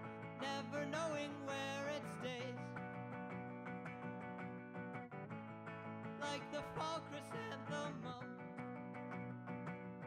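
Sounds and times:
electric guitar strummed chords: 0.0 - 10.0.

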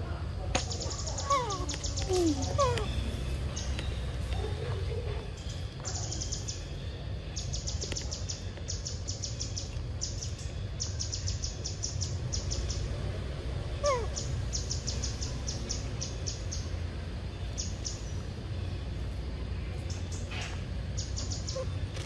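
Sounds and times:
steady low rumble: 0.0 - 22.0
high-pitched bird chirps: 0.7 - 4.6, 13.7 - 16.7, 21.0 - 22.0.

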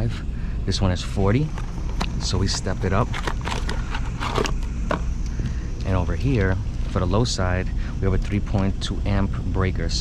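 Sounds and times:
steady low hum: 0.0 - 10.0
clicks and rustles of cardboard box: 1.5 - 4.7.

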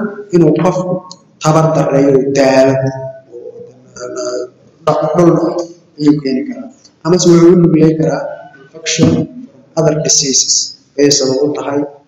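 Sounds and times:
man lecturing: 0.0 - 12.0.

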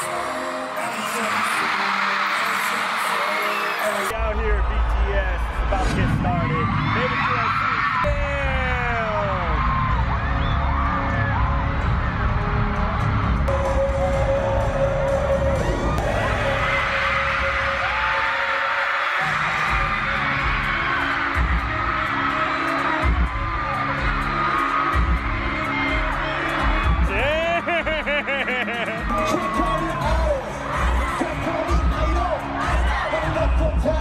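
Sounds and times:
crowd screaming and cheering: 0.0 - 34.0
deep bass music: 8.0 - 18.2, 19.4 - 34.0.

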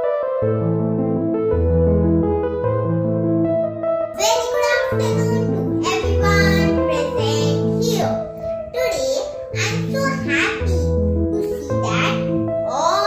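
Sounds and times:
keyboard chords: 0.0 - 13.0
girl singing: 4.2 - 13.0.

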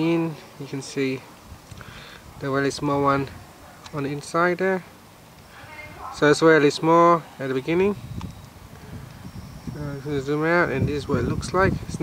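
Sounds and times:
man talking: 0.0 - 1.3, 2.4 - 4.9, 6.0 - 8.0, 9.7 - 12.0
low rumbling microphone noise: 1.2 - 12.0.

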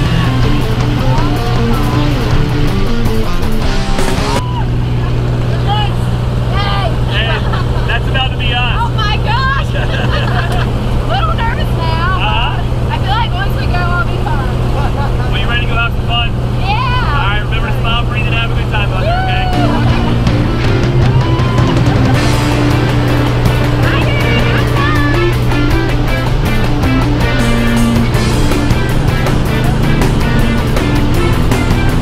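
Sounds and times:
music: 0.0 - 4.7, 16.9 - 32.0
plane engine drone: 0.0 - 32.0
people shouting excitedly: 0.8 - 2.2, 19.0 - 22.6, 23.8 - 25.4.

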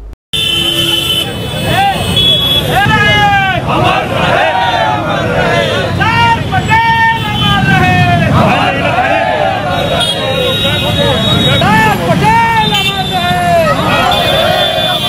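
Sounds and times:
crowd chanting slogans: 2.7 - 6.6, 7.6 - 12.4, 13.4 - 15.0.

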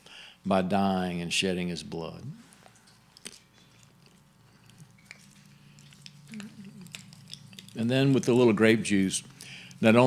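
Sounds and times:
steady low hum: 0.0 - 10.0
faint chewing: 2.4 - 8.6.

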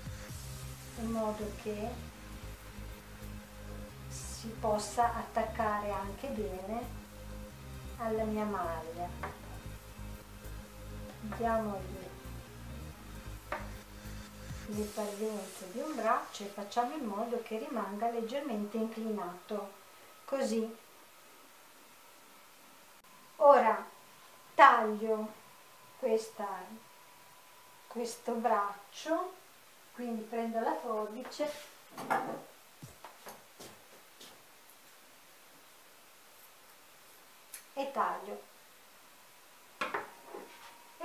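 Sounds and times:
quiet background music: 0.0 - 41.0
light knock on wooden table: 9.2 - 9.4, 13.5 - 13.8, 39.8 - 40.1.

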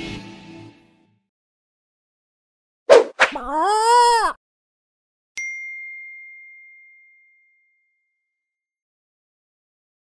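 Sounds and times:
bell-like ding: 5.4 - 8.2.

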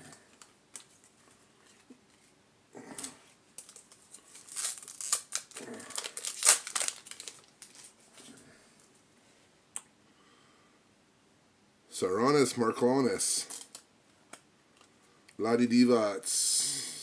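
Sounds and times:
wrapper crinkling and tearing: 2.9 - 8.0, 13.4 - 13.8.

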